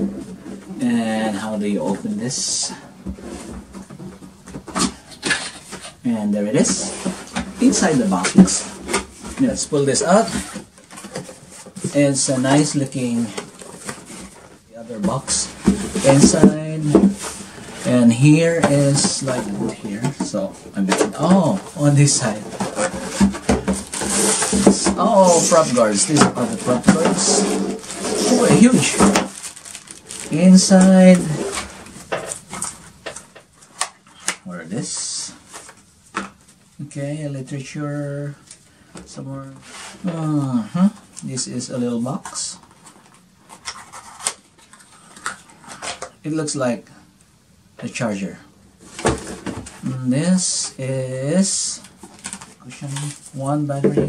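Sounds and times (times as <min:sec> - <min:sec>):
paper rustling: 0:06.6 - 0:34.4, 0:42.2 - 0:46.1
cardboard scraping on cardboard: 0:21.2 - 0:31.9.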